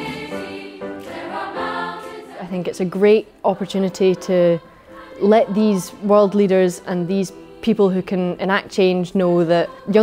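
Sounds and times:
youth choir singing: 0:00.0 - 0:10.0.

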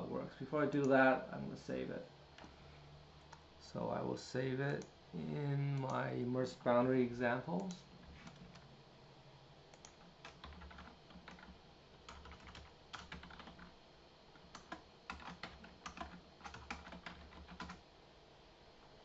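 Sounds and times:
computer keyboard typing: 0:07.6 - 0:08.6, 0:09.7 - 0:13.7, 0:14.4 - 0:17.8.

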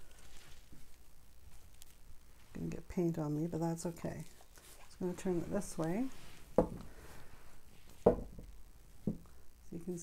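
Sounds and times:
canvas knocking against table: 0:06.6 - 0:06.8, 0:08.0 - 0:09.2.

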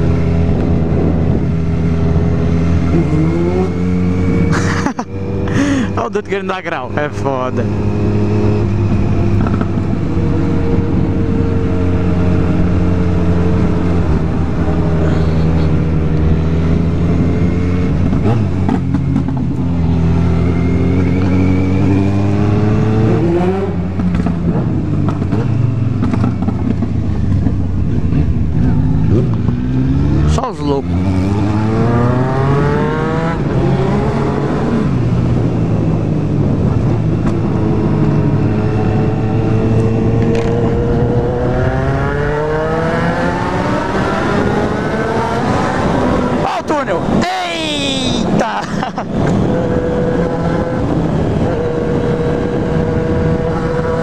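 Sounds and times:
motorcycle engine shifting gears: 0:06.9 - 0:46.4, 0:48.8 - 0:54.0.

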